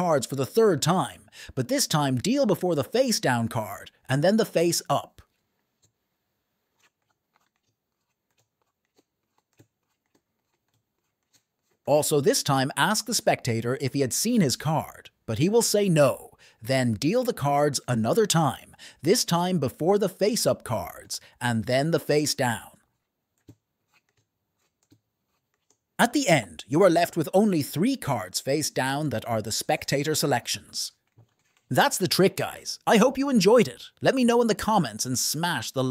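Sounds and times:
playing cards laid on table: 6.6s - 11.9s, 22.6s - 25.9s, 31.0s - 32.2s.

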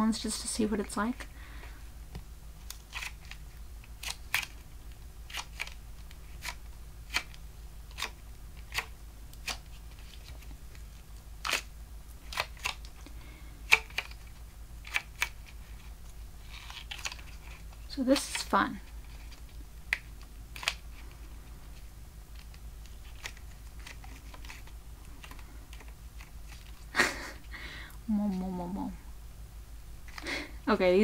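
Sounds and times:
rubber squeeze toy crackling: 2.6s - 27.3s.

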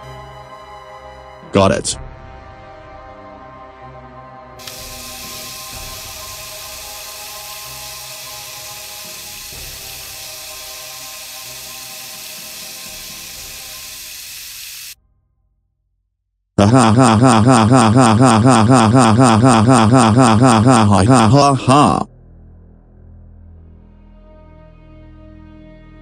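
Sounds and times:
background music: 0.0s - 14.6s, 16.6s - 26.0s
tap water running into bucket: 4.6s - 15.0s.

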